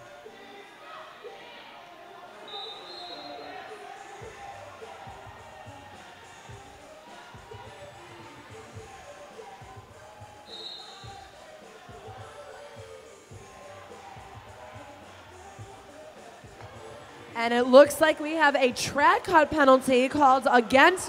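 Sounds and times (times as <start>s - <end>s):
crowd murmur: 0.0s - 21.0s
referee whistle blast: 2.5s - 3.6s, 10.4s - 11.3s.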